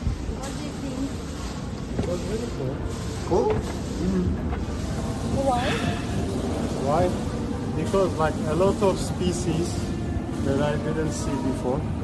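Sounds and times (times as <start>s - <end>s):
shopping centre din: 0.0s - 12.0s.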